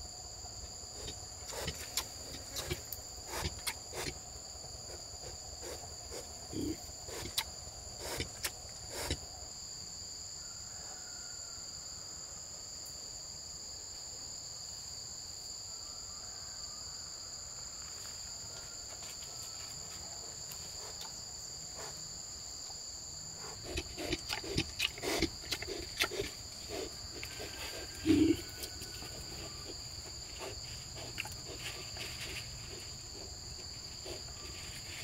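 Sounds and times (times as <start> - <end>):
insects droning: 0.0 - 35.0.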